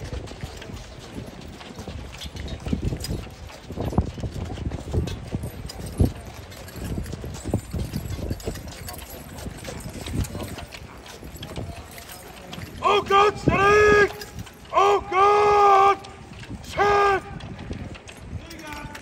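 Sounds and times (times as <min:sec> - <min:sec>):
horse hooves on gravel: 0:00.0 - 0:19.0.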